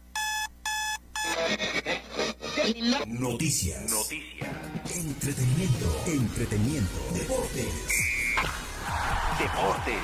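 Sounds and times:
music: 0:03.9 - 0:10.0
short electronic beeps: 0:08.0 - 0:08.5.

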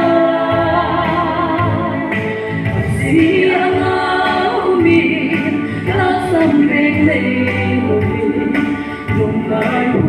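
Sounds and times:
woman singing gospel song: 0:00.0 - 0:10.0.

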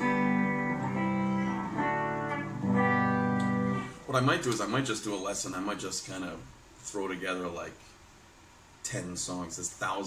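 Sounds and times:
clean electric guitar chords: 0:00.0 - 0:04.1.

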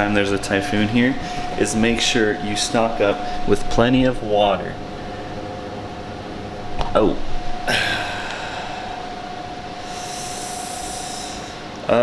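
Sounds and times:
indoor appliance hum: 0:00.0 - 0:12.0.

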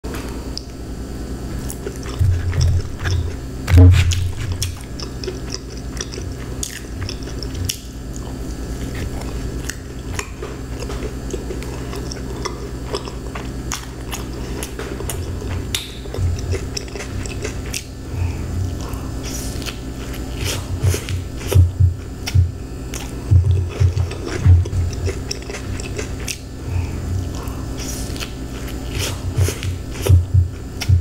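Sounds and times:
low steady hum: 0:00.0 - 0:31.0
chewing and crunching pizza crust: 0:00.1 - 0:31.0.

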